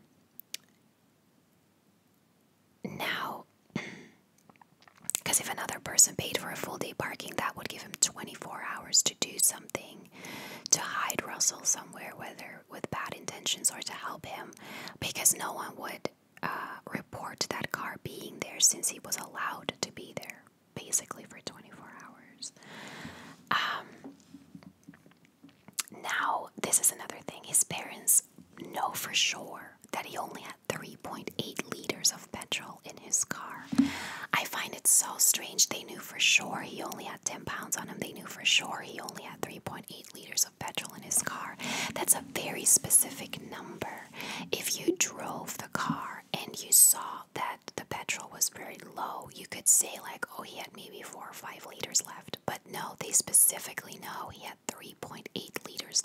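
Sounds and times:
woman whispering: 2.9s - 3.5s, 5.2s - 10.1s, 10.7s - 22.6s, 23.5s - 24.1s, 25.8s - 56.0s.

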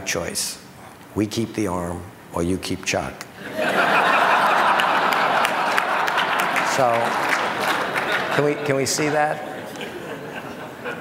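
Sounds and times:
man speaking: 0.0s - 3.2s, 6.6s - 7.2s, 8.4s - 9.5s
audience applauding: 4.0s - 10.0s.

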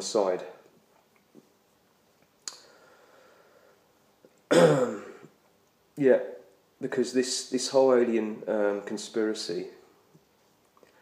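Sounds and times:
man clearing his throat: 4.5s - 5.3s.

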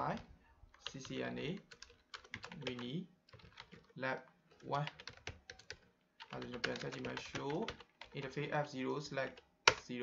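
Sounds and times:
typing on computer keyboard: 0.0s - 10.0s.

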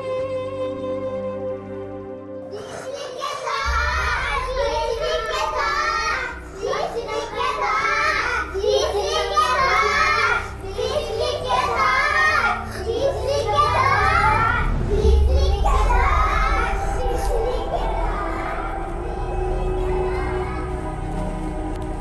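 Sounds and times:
steady low hum: 3.6s - 22.0s.

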